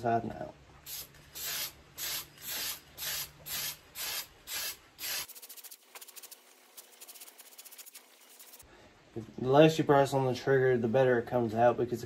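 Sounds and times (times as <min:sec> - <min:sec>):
aerosol spray hissing bursts: 0:00.9 - 0:08.6.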